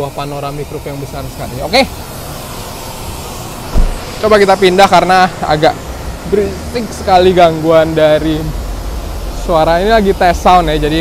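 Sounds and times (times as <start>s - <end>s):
loud low thump: 3.7s - 4.1s.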